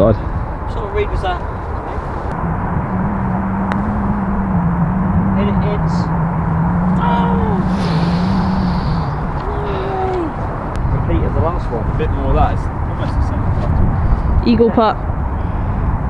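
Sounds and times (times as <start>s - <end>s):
wind rumble on microphone: 0.0s - 16.0s
low engine drone: 1.7s - 13.4s.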